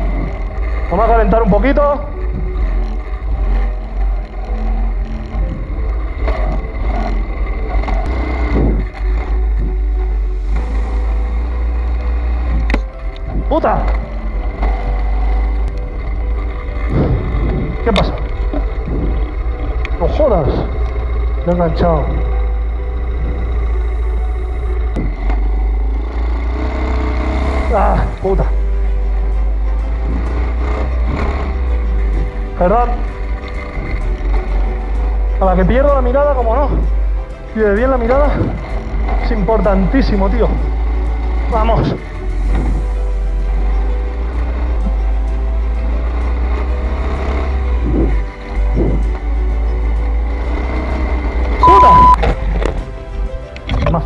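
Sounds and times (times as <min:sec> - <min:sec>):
motorbike engine revving: 0:00.0 - 0:53.7.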